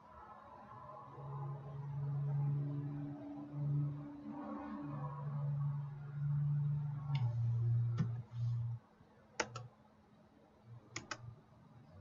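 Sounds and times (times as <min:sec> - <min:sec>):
low steady hum: 0:01.0 - 0:08.8.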